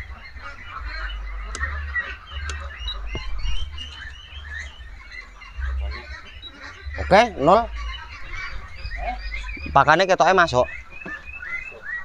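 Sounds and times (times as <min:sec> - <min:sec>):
ducks quacking: 0:00.0 - 0:12.0
low rumble: 0:00.8 - 0:10.7
sharp clicks: 0:01.5 - 0:01.7, 0:02.4 - 0:03.3.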